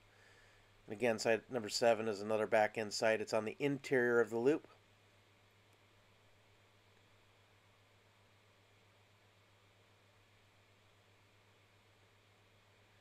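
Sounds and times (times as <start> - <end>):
faint hiss: 0.0 - 13.0.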